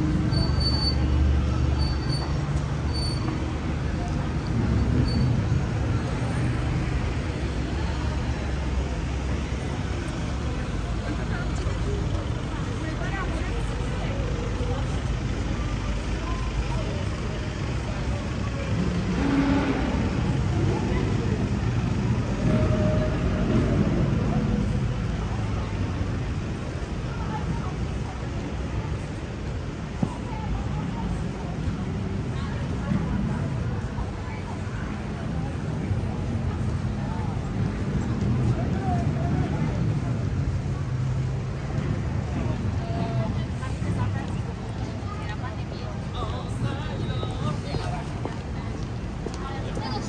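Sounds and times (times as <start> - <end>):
passers-by talking: 0.0 - 50.0
passing traffic rumble: 0.0 - 50.0.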